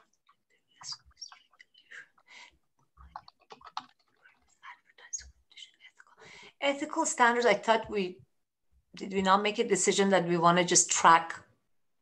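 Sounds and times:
faint keyboard typing: 0.7 - 6.2.

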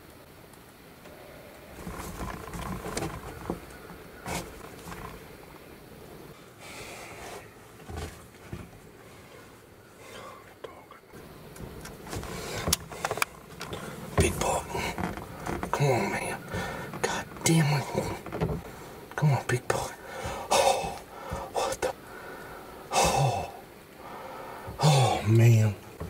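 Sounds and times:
low whispering: 9.2 - 11.2, 13.7 - 25.8.

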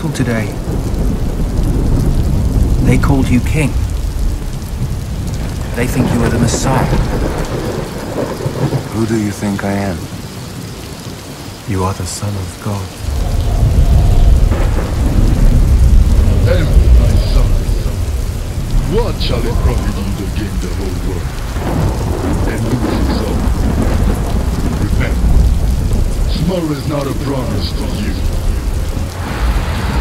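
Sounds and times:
low thunder rumble: 0.0 - 11.7, 12.9 - 30.0
steady rain: 0.0 - 30.0.

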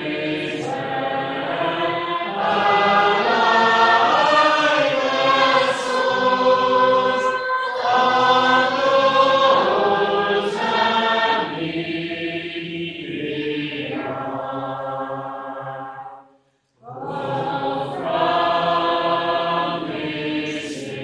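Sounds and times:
congregation singing unaccompanied: 0.0 - 21.0.

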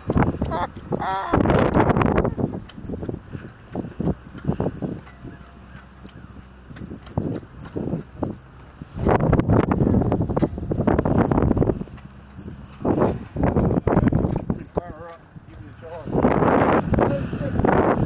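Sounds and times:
handling knocks and clicks: 0.0 - 8.8, 10.3 - 15.7
faint low engine hum: 0.0 - 18.0
wind buffeting microphone: 0.0 - 18.0.

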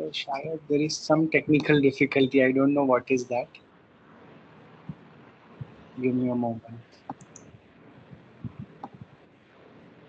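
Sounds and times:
faint background hiss: 0.0 - 10.0
computer clicks: 7.0 - 7.5, 8.4 - 9.0.

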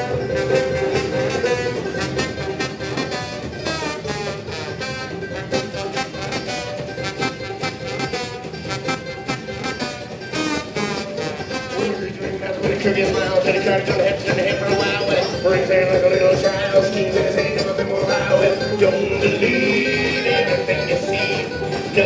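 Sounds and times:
banjo: 0.0 - 22.0
trombone melody: 0.0 - 22.0.

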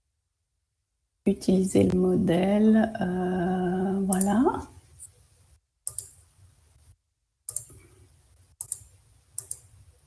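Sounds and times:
computer mouse clicks: 4.1 - 4.3, 5.9 - 6.3, 7.5 - 7.9, 8.6 - 9.8.

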